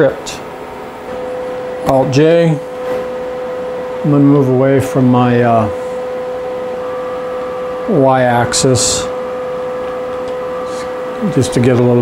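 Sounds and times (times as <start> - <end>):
mill electrical whine with hum: 0.0 - 12.0.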